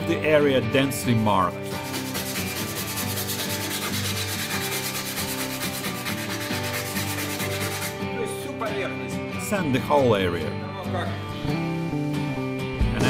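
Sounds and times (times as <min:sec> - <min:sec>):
sandpaper rubbing on steel: 0:01.7 - 0:08.0.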